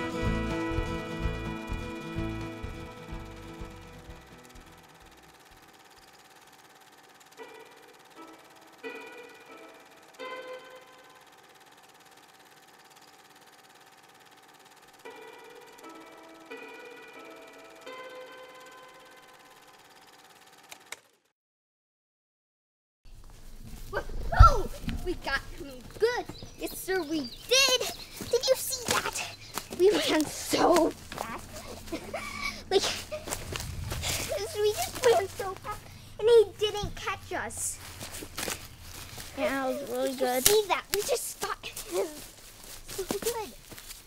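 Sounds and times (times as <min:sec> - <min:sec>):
soft instrumental film score: 0:00.0 - 0:05.4.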